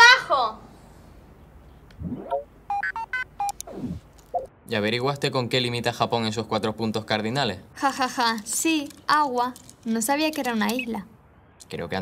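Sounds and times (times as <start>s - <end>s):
rising swoop: 1.9s - 2.5s, 3.5s - 4.5s.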